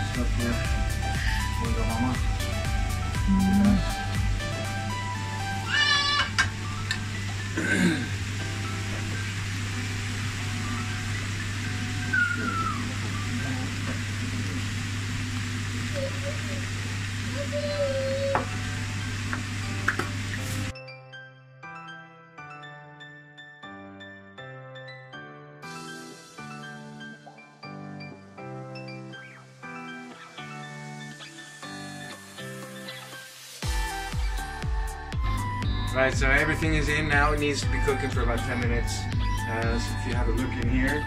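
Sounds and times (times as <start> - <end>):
background music with a beat: 0.0 - 5.6, 30.4 - 41.0.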